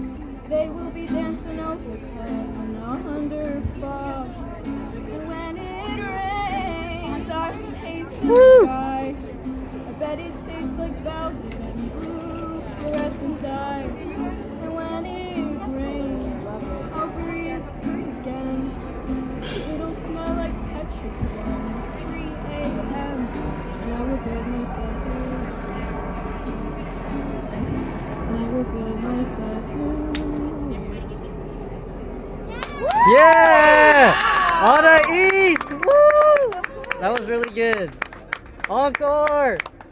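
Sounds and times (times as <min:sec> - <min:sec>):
acoustic guitar playing: 0:00.0 - 0:35.8
person singing wordlessly: 0:10.0 - 0:25.5.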